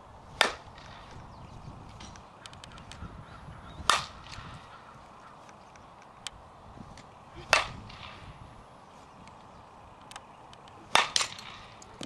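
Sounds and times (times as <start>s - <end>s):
bat hitting a softball: 0.4s - 1.2s, 3.8s - 4.7s, 6.9s - 8.4s, 10.8s - 12.0s.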